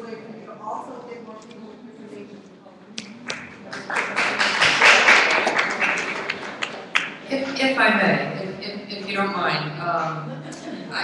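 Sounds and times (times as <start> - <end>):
audience applauding: 3.2 - 7.3.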